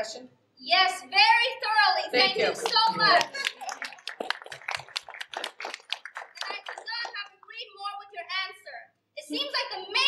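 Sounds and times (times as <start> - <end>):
people clapping: 2.2 - 7.6.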